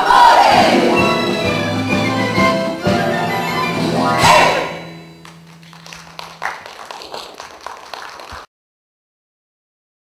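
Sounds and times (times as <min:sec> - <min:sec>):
scattered applause: 0:05.2 - 0:08.5.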